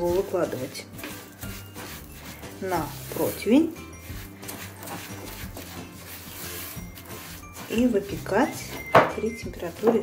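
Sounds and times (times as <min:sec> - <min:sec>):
quiet background music: 0:00.0 - 0:10.0
spatula scraping a bowl: 0:00.0 - 0:10.0.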